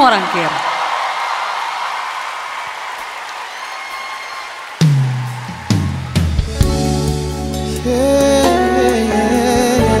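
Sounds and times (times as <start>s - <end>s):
audience applauding and cheering: 0.0s - 7.0s
soft sustained music: 6.6s - 10.0s.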